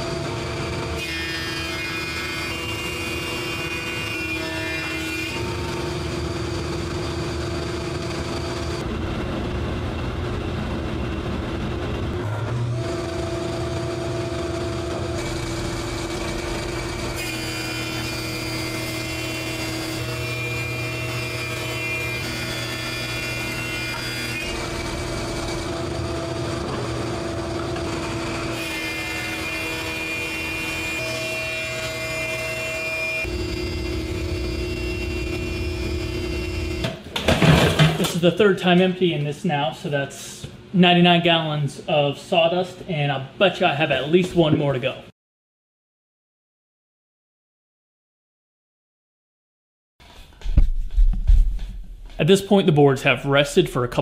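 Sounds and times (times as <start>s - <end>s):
thickness planer planing boards: 0.0s - 8.8s, 12.2s - 38.2s.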